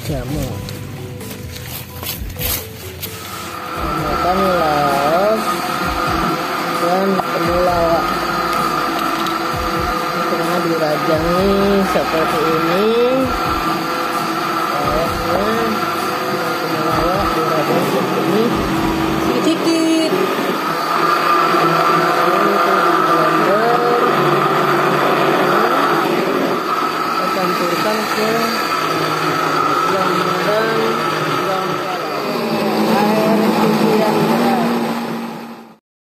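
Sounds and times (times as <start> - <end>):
electric blender running: 0.0 - 35.8
background voices: 3.6 - 35.2.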